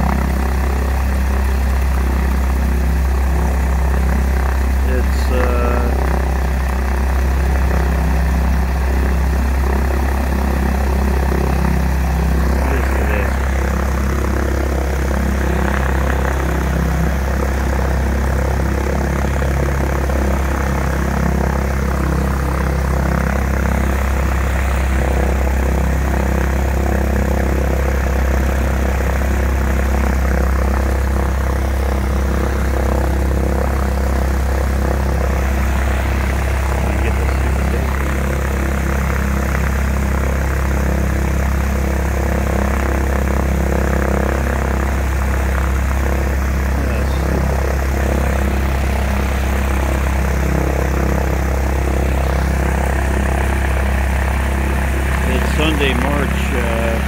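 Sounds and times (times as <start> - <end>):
propeller plane engine idling: 0.0 - 57.0.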